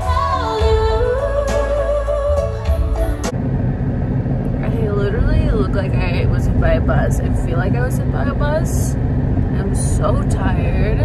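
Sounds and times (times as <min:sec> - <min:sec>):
concert music: 0:00.0 - 0:03.3
car cabin rumble: 0:00.0 - 0:11.0
woman speaking: 0:04.6 - 0:11.0.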